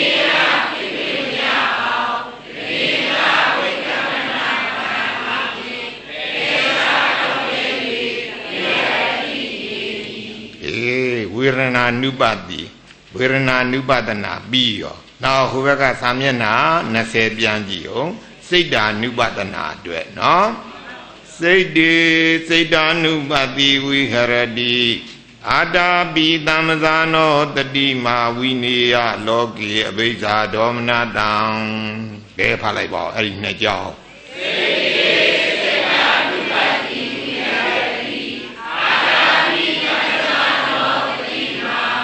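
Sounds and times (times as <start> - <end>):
crowd chanting in unison: 0.0 - 10.6, 34.1 - 42.0
man chanting: 10.6 - 20.7, 21.3 - 34.0.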